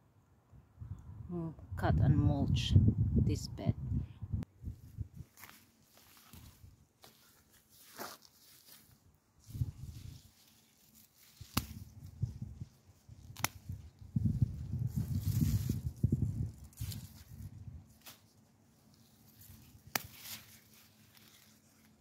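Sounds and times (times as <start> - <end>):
rustling of plants: 4.6 - 22.0
pruning shears snipping stems: 11.0 - 11.9, 13.2 - 13.8, 19.4 - 21.6.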